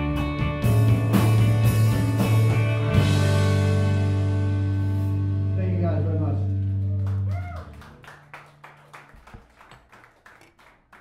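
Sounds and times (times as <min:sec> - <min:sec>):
audience handclaps: 0:06.6 - 0:11.0.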